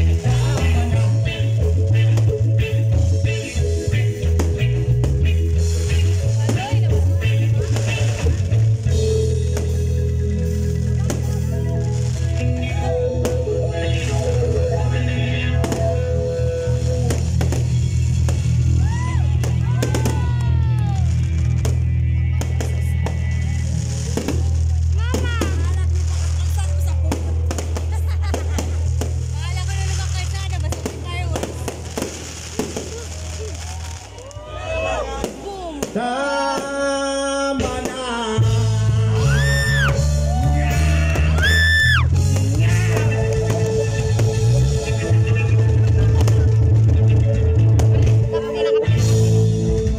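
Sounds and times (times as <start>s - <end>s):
band holding low chord: 0.0s - 26.3s, 36.0s - 41.4s, 42.0s - 49.9s
fireworks crackling and banging: 0.0s - 38.8s, 39.4s - 48.4s
crowd shouting: 11.0s - 26.0s, 31.8s - 46.4s.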